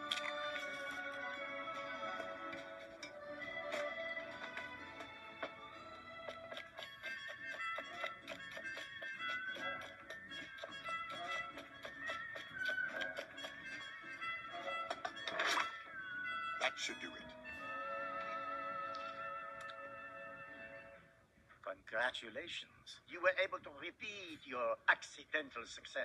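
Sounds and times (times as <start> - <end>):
orchestral music with violin: 0.0 - 21.0.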